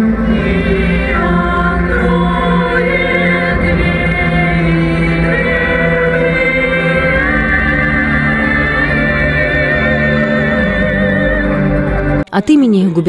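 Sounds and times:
voices singing held notes: 0.0 - 13.0.

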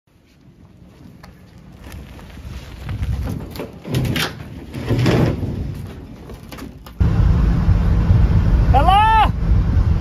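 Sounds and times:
tyres rolling over gritty asphalt: 0.4 - 7.0.

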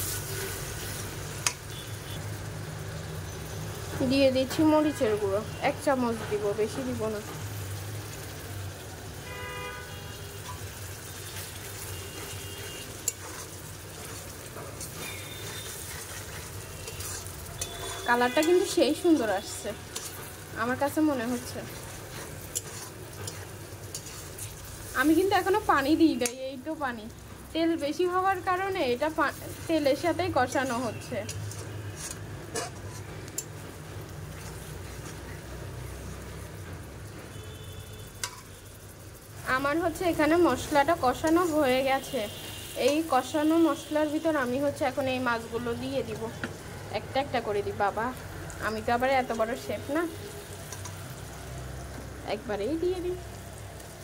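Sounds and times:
spatula scraping wok: 0.0 - 1.8, 10.2 - 54.0
spices sizzling in oil: 0.0 - 54.0
metal spatula clicking on pan: 1.4 - 1.6, 16.9 - 18.6, 26.2 - 26.4, 30.6 - 33.6, 38.2 - 38.5, 41.2 - 41.6, 50.6 - 51.0.

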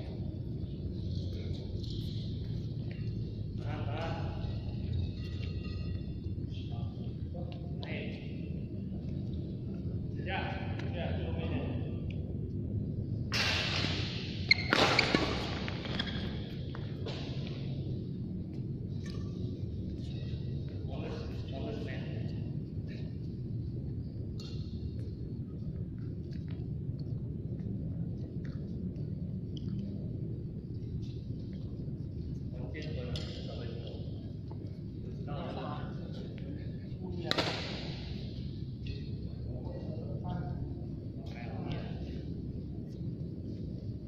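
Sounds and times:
low hum: 0.0 - 44.0
racket hitting shuttlecock: 13.3 - 16.2, 37.3 - 38.0.

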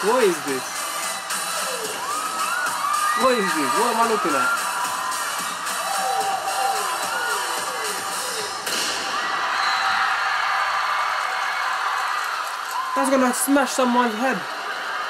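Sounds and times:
live concert music: 0.0 - 8.7.

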